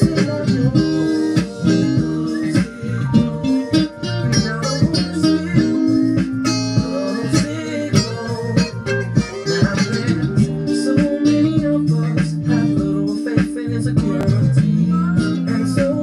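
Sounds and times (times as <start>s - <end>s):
backing music with beat: 0.0s - 16.0s
electric guitar melody: 0.0s - 16.0s.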